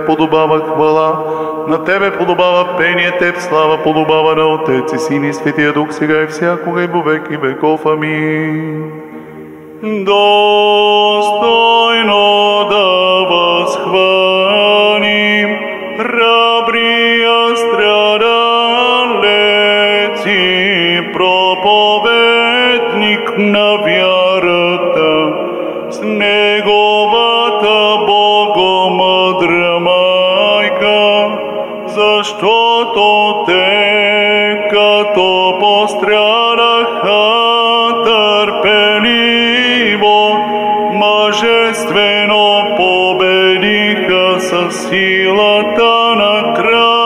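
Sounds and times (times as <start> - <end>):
man chanting into a microphone: 0.0 - 9.2, 9.8 - 47.0
singer breathing: 1.2 - 1.7, 9.0 - 9.8.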